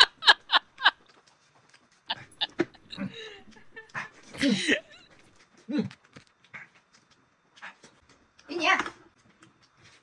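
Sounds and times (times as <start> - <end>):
stifled laughter: 0.0 - 1.0, 2.0 - 5.2.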